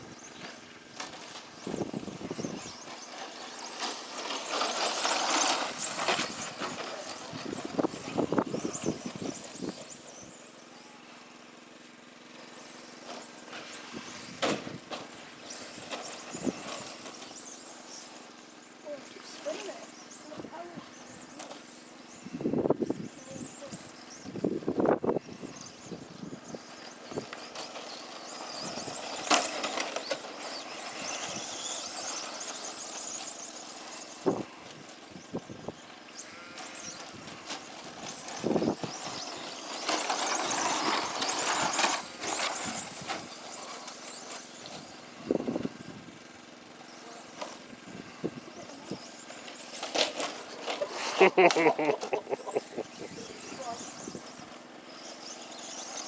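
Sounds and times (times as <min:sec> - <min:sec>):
rc truck motor whine: 0:00.0 - 0:56.0
tyre noise: 0:36.4 - 0:45.7.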